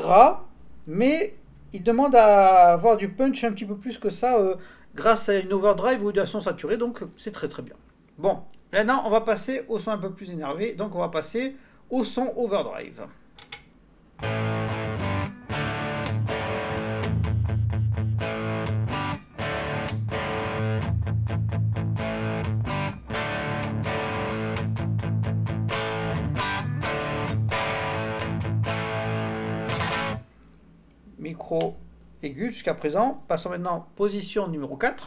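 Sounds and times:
distorted electric guitar chords: 14.2s - 30.2s.

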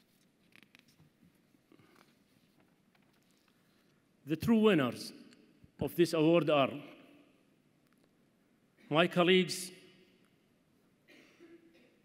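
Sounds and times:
faint rustles at microphone: 0.0s - 4.2s.

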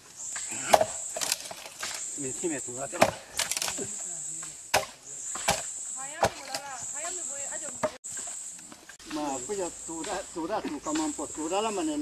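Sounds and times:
axe chopping into wood: 0.4s - 2.0s, 2.9s - 3.8s, 4.7s - 6.7s.

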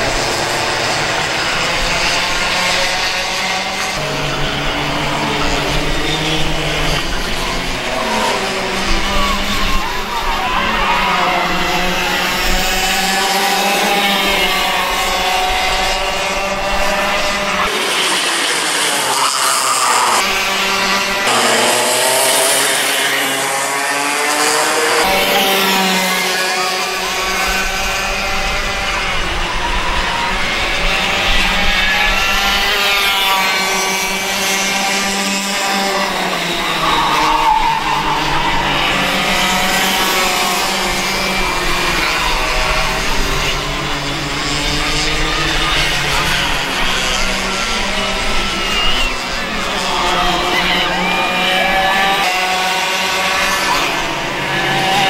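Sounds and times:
kart engines buzzing: 0.0s - 55.0s.

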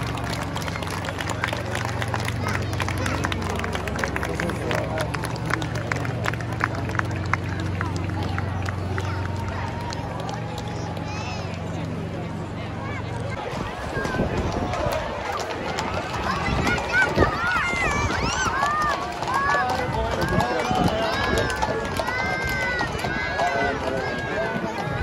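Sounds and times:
crowd calls and chatter: 0.0s - 25.0s
horse hooves clopping on road: 14.0s - 25.0s.

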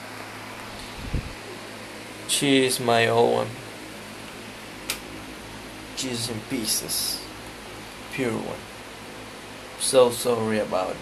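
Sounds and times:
computer fans whirring: 0.0s - 11.0s
sharp click: 4.9s - 5.1s.

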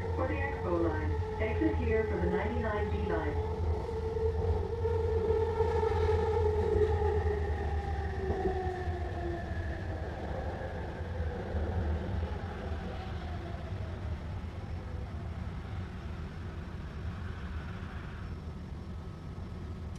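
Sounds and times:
low rumble of train wheels: 0.0s - 19.9s.

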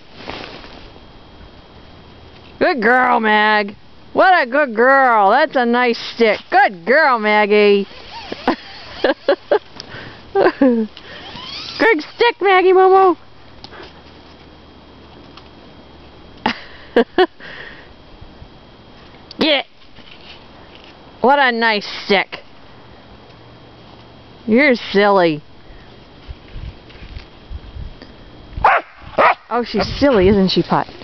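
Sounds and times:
woman laughing word: 8.3s - 9.7s, 10.3s - 11.0s, 16.4s - 17.4s
faint low rumbling: 25.4s - 31.0s
dog barking: 28.6s - 29.5s.

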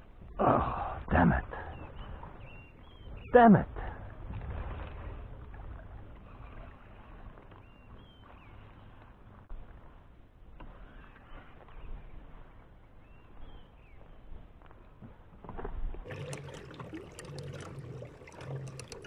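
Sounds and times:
water lapping along kayak hull: 0.0s - 19.0s
bird chirp: 1.4s - 4.4s, 6.2s - 9.4s, 10.7s - 14.4s.

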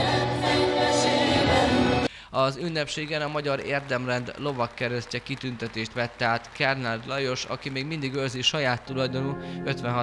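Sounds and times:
mixed vocal group singing in harmony: 0.0s - 2.1s.

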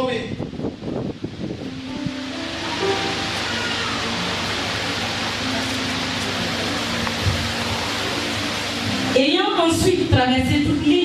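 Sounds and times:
steady hiss: 0.0s - 11.0s
soft music of held chords: 1.5s - 10.2s.

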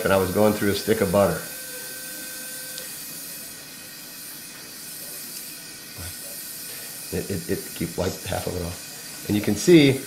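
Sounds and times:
smoke evacuator hissing: 2.2s - 10.0s.

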